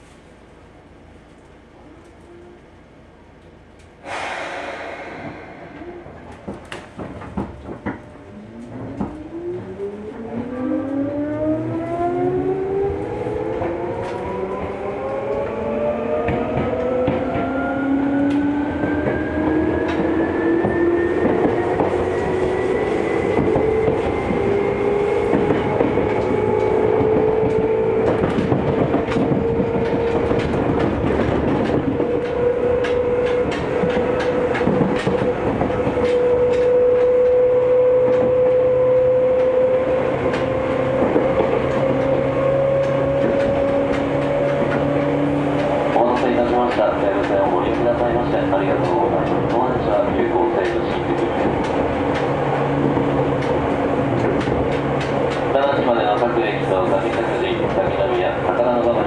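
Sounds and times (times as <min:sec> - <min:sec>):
train traction motors whining: 0:07.6 - 0:59.0.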